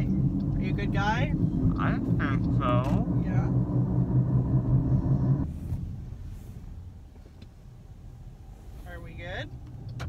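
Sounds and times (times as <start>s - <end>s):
low rumble: 0.0s - 8.6s
engine and road hum in vehicle: 0.0s - 10.0s.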